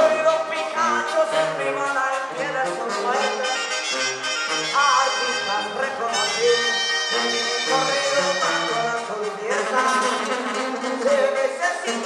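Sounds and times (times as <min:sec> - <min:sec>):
live band music: 0:00.0 - 0:12.0
man's voice: 0:00.0 - 0:12.0.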